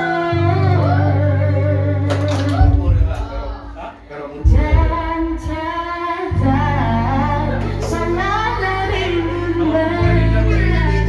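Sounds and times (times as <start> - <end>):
woman singing into karaoke microphone: 0.0 - 2.9, 4.4 - 11.0
karaoke backing track: 0.0 - 11.0.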